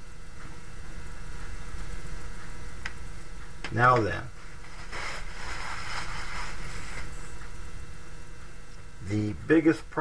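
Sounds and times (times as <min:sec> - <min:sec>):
low background hum: 0:00.0 - 0:10.0
whiteboard being wiped: 0:04.6 - 0:07.3.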